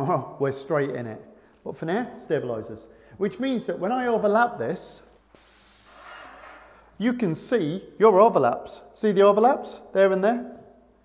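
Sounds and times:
paint spray gun hissing: 5.4 - 6.6.

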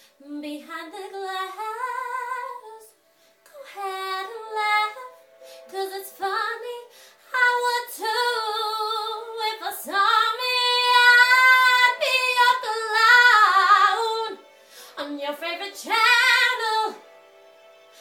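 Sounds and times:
woman singing: 0.2 - 17.0.

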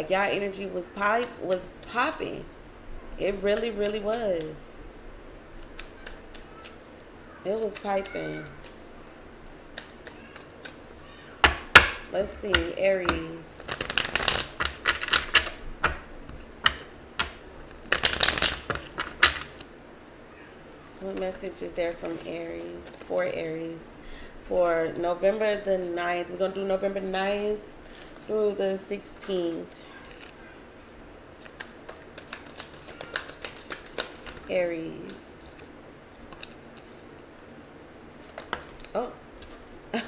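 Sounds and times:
cards shuffling flutter: 3.4 - 4.6, 5.5 - 11.1, 12.4 - 19.7, 31.4 - 35.7, 36.3 - 37.6, 38.2 - 39.6
cards snapping and tapping: 5.6 - 6.8, 7.6 - 8.8, 9.6 - 19.7, 31.4 - 35.2, 36.3 - 37.0, 38.2 - 39.6.

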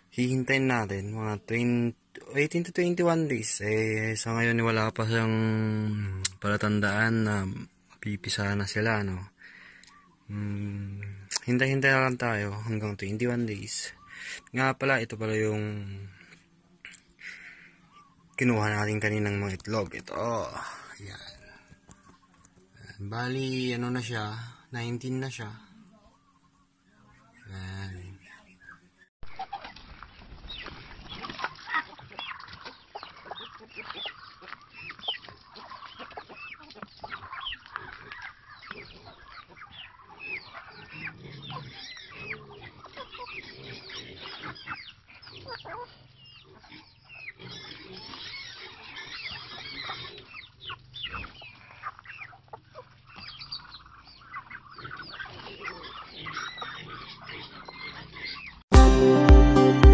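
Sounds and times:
chickens clucking and calling: 0.0 - 24.6, 25.3 - 59.7.

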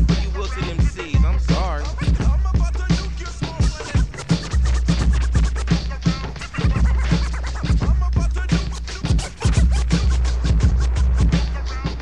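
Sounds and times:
hip hop beat: 0.0 - 12.0
turntable scratching: 0.0 - 12.0.

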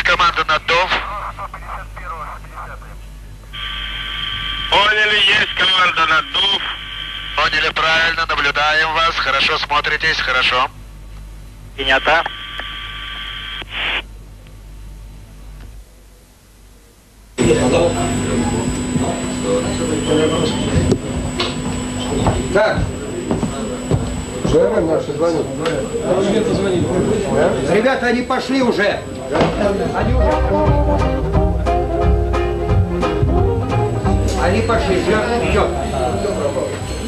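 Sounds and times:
voice chatter over radio: 0.0 - 3.1, 4.7 - 10.7, 11.8 - 12.7
steady electronic tone: 27.2 - 37.0.

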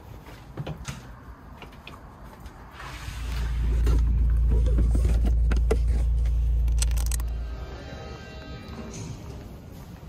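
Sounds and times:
car cabin rumble: 3.2 - 7.4.

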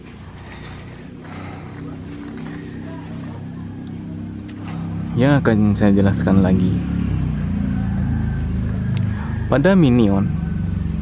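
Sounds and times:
engine droning: 0.0 - 11.0.

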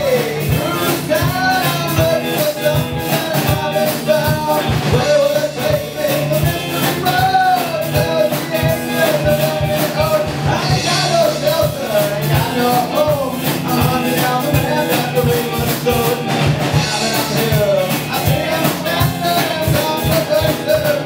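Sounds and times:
man singing: 0.0 - 21.0
rock band playing: 0.0 - 21.0.

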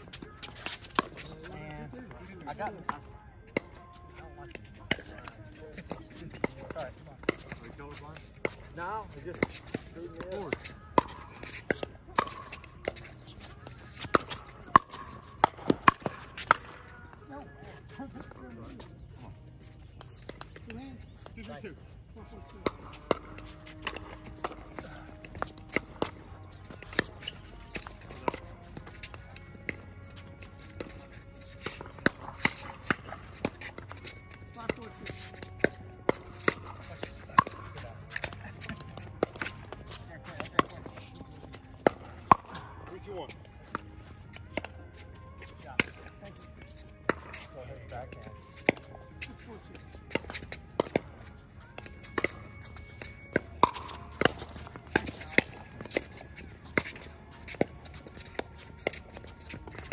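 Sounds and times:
ball bouncing on hard court: 9.3 - 16.9, 22.6 - 42.7, 50.1 - 59.9.

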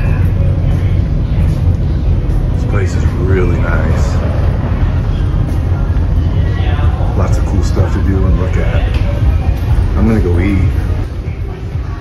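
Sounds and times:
ferry engine rumble: 0.0 - 12.0.

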